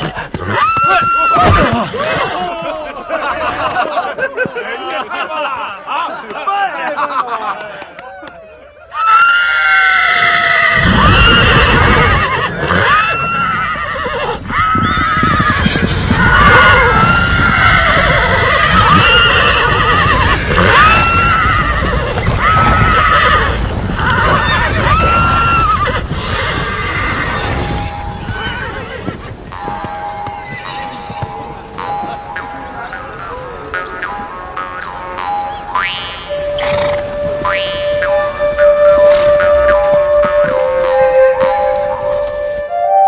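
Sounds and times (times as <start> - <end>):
hoofbeats of running horses: 0.0 - 2.9, 14.8 - 35.6
horses neighing: 0.0 - 3.0, 9.2 - 41.9.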